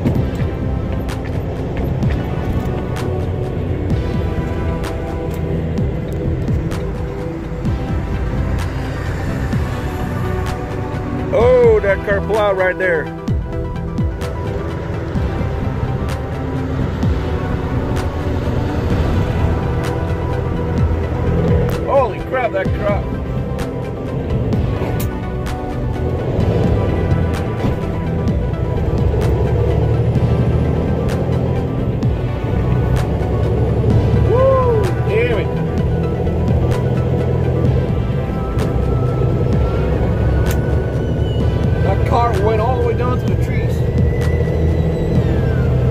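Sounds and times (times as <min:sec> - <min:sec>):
car road and engine rumble: 0:00.0 - 0:45.9
music: 0:00.0 - 0:45.9.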